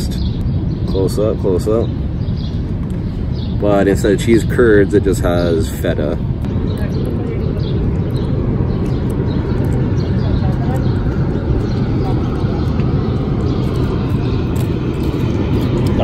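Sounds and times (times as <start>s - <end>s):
low outdoor rumble: 0.0s - 16.0s.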